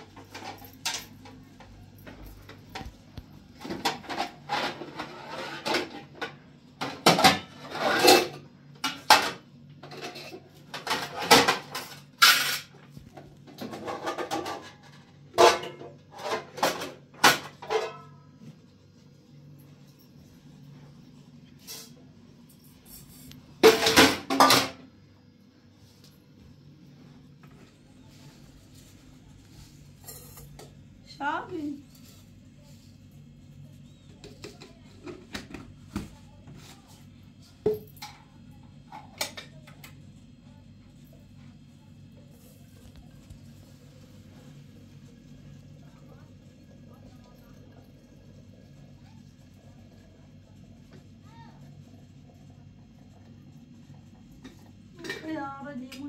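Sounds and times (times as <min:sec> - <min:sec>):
metal pots and dishes clattering: 0:00.0 - 0:02.9, 0:03.6 - 0:12.8, 0:13.4 - 0:18.4, 0:23.0 - 0:24.9
faint low hum: 0:09.8 - 0:56.0.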